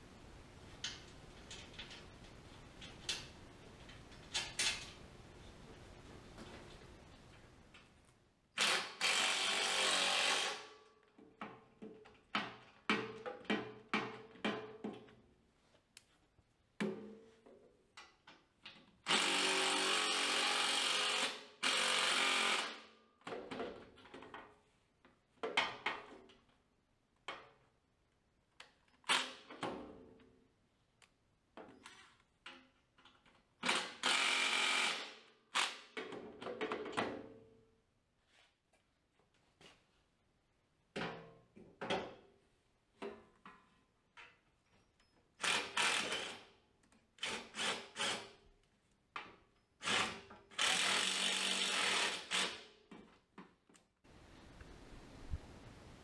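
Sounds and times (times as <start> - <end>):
handheld power drill running: 8.6 - 10.7, 19.1 - 22.9, 33.6 - 35.9, 45.4 - 46.5, 49.8 - 52.6.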